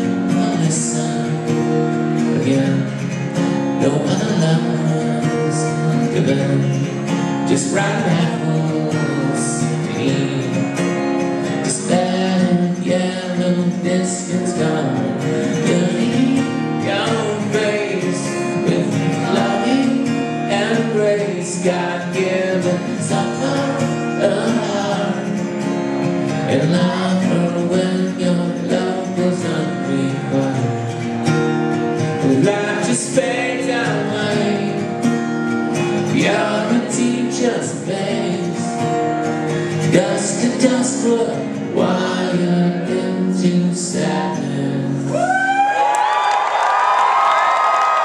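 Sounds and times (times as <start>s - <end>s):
acoustic guitar strumming: 0.0s - 48.0s.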